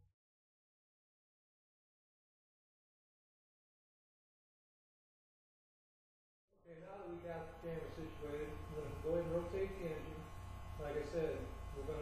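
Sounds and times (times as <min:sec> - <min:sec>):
low electrical hum: 0:06.6 - 0:12.0
man talking: 0:06.6 - 0:12.0.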